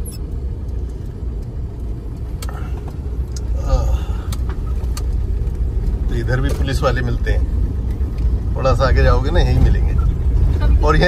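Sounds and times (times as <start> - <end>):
diesel engine rumble in cabin: 0.0 - 11.0
tyre road noise: 0.0 - 11.0.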